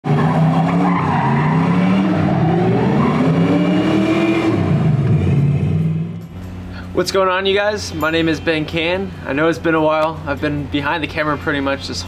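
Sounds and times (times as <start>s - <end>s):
car engine revving: 0.0s - 6.4s.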